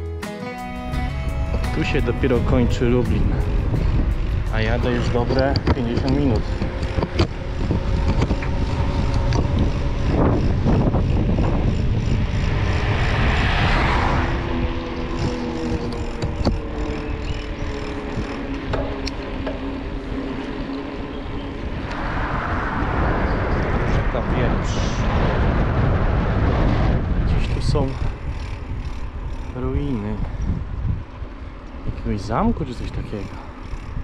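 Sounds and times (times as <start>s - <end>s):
faint falling drone: 0.8s - 27.2s
wind buffeting microphone: 1.1s - 34.0s.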